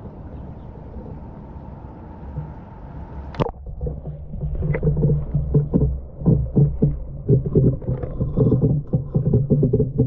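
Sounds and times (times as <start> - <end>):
muffled underwater water sloshing: 2.3 - 10.0
soft thumps: 3.4 - 10.0.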